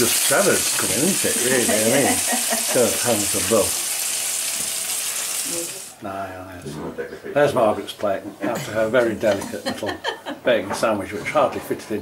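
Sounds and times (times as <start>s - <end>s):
food sizzling in a pan: 0.0s - 6.0s.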